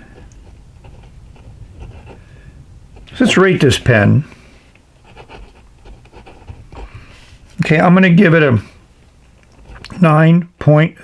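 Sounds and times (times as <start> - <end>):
pen nib scratching paper: 0.1 - 2.2, 5.0 - 7.0.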